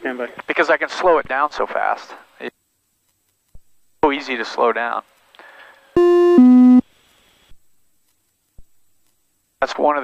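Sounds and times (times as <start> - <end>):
two-note electronic alert tone: 6.0 - 6.8.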